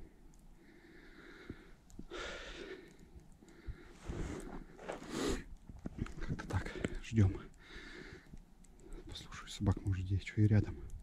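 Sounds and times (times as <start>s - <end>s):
person breathing: 0.0s - 9.1s.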